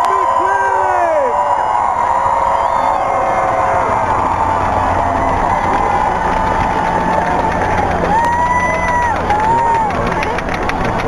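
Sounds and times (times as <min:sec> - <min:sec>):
held whoop: 0:00.0 - 0:10.4
crowd cheering and whooping: 0:00.0 - 0:11.0.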